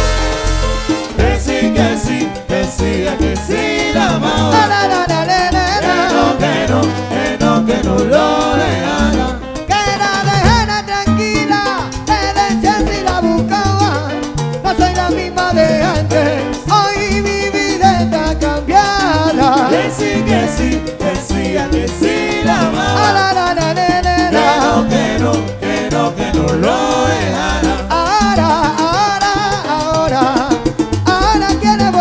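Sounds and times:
bass line: 0.0 - 32.0
conga drums: 0.0 - 32.0
salsa band playing: 0.0 - 32.0
voices singing: 1.1 - 10.9, 18.6 - 28.5.

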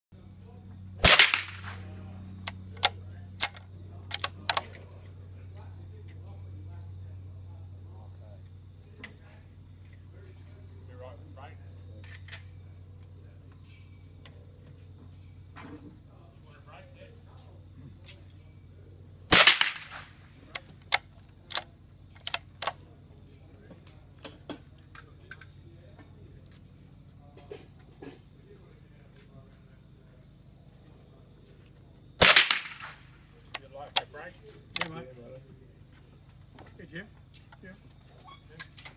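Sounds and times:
rifle shot with echo: 1.0 - 2.0, 19.3 - 20.2, 32.2 - 33.2
faint sharp cracks and clicks: 1.0 - 4.9, 19.3 - 22.8, 31.7 - 35.0
rifle bolt clicks: 2.8 - 4.7.

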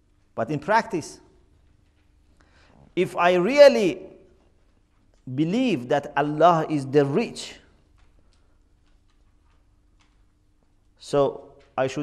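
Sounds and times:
faint steady hum: 0.0 - 12.0
faint irregular ticks: 7.7 - 12.0.

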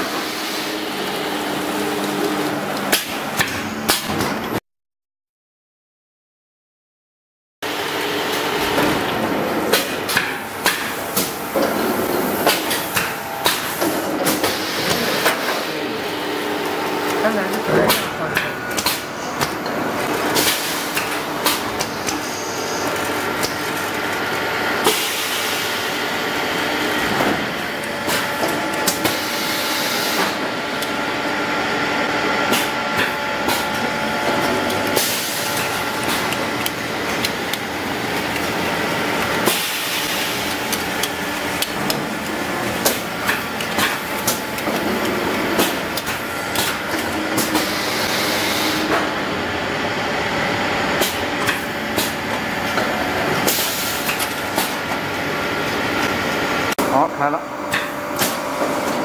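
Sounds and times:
machine and conveyor running: 0.0 - 4.6, 7.6 - 59.0.

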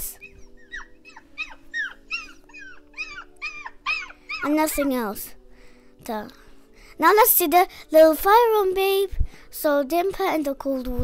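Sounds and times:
puppy whimpering: 0.0 - 4.8
background music: 0.0 - 11.0.

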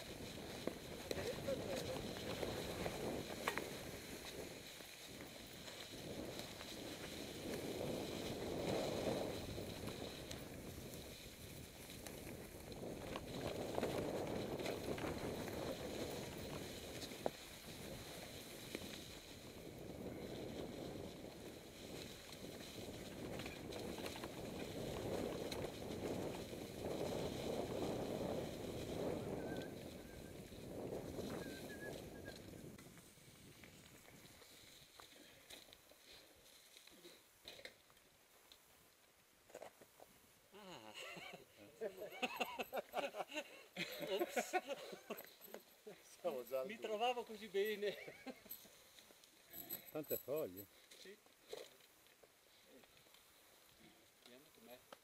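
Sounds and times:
tyres crunching through dry leaves: 0.0 - 19.6
wind noise on camera: 0.0 - 34.5.

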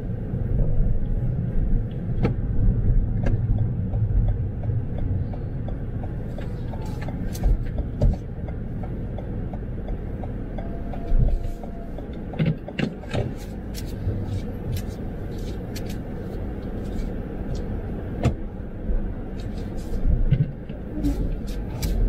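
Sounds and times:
engine and tyre rumble: 0.0 - 22.0
turn signal ticking: 0.6 - 18.4, 19.3 - 22.0.

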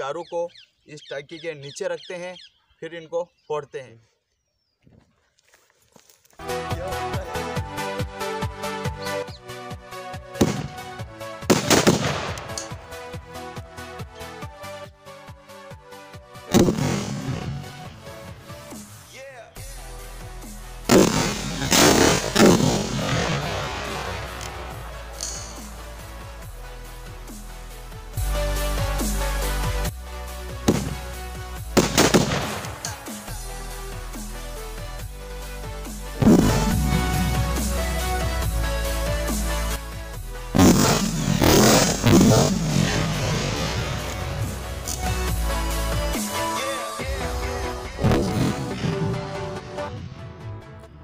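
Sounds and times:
background music with steady beat: 6.4 - 42.9, 43.6 - 51.0
firecracker bangs: 10.4 - 10.8, 11.5 - 12.6, 20.9 - 24.7, 30.7 - 31.2, 31.8 - 33.1, 36.2 - 37.6, 40.6 - 44.0.

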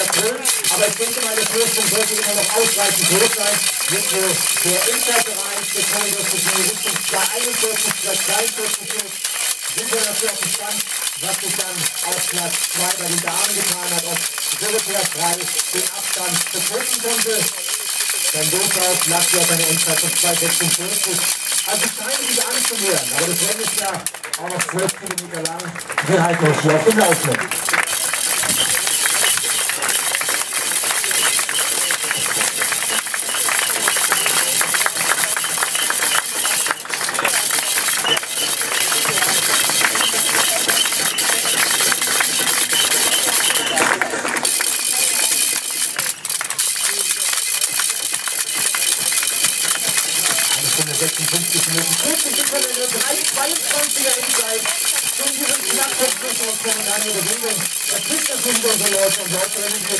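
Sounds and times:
spectators clapping: 0.0 - 59.9.

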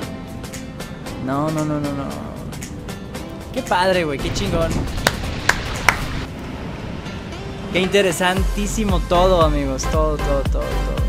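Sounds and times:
sharp hand claps: 5.0 - 6.2.

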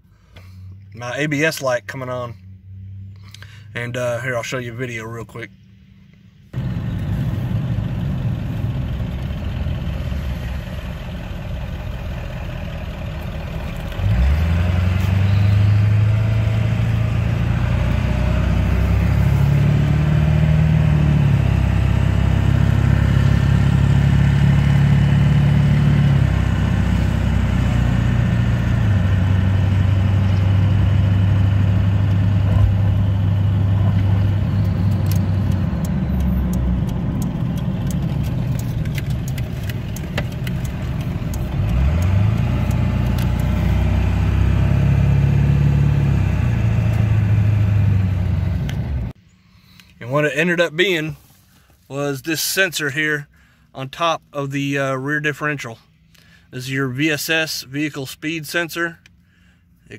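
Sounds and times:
diesel truck engine drone: 0.0 - 51.8.

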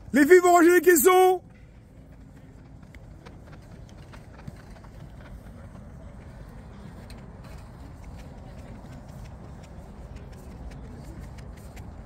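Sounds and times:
faint distant voices: 0.9 - 12.0.

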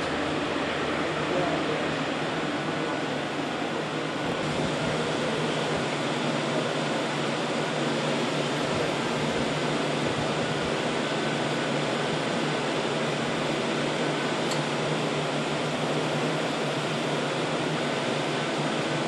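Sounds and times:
machinery hum and hiss: 0.0 - 19.0.

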